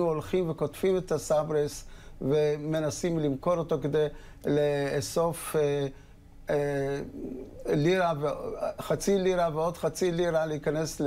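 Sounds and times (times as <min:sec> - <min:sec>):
man humming: 0:07.0 - 0:07.8.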